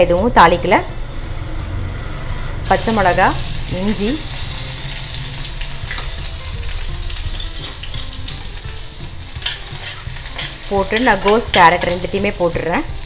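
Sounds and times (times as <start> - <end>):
food sizzling in hot oil: 2.6 - 13.0
metal spatula clicking against pan: 9.4 - 12.0.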